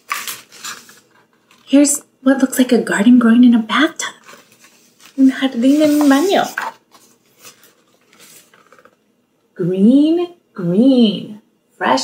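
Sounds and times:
book page turning: 0.0 - 1.7, 4.2 - 9.0.

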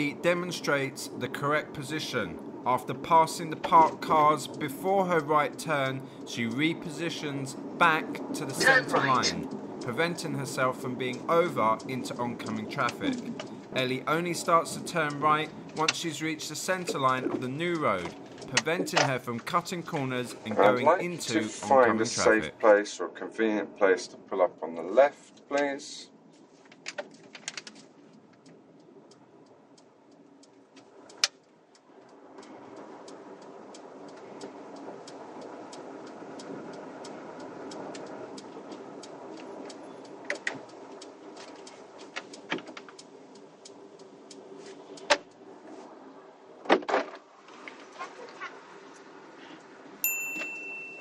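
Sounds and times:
scattered clicks: 0.0 - 22.5, 26.7 - 46.6
low vehicle rumble: 0.0 - 22.6, 26.1 - 50.0.

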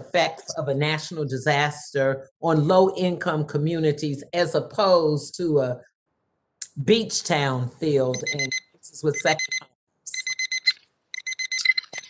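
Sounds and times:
timer alarm rapid high beeps: 8.2 - 12.0.

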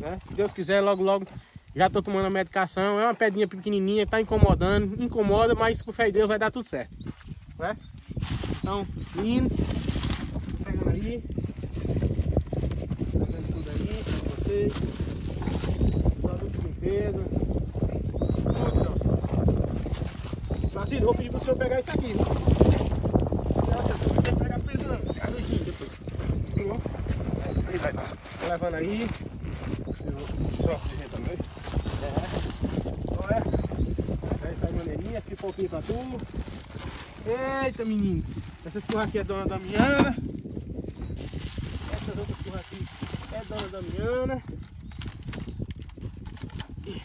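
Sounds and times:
wind rumble on microphone: 0.0 - 47.0.

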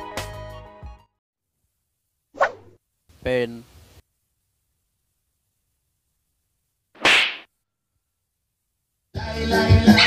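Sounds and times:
sharp swish: 2.4 - 2.8, 7.0 - 7.5.

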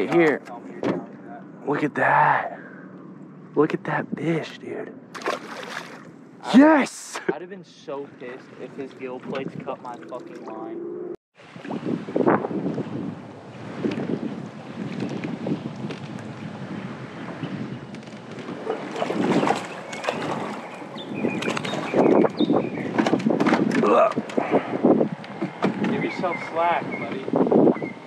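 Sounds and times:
fish splashing in water: 5.1 - 6.2, 18.2 - 22.1
wind on microphone: 8.7 - 28.0.

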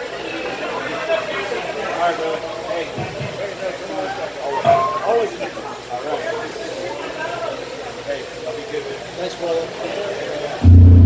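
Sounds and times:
music: 10.6 - 11.0.

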